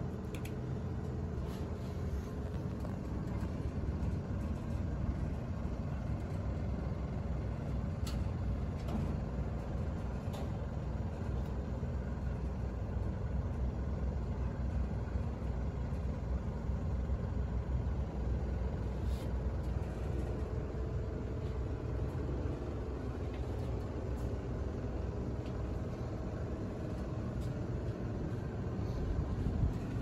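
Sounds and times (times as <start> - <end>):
lift rumbling up shaft: 0.0 - 30.0.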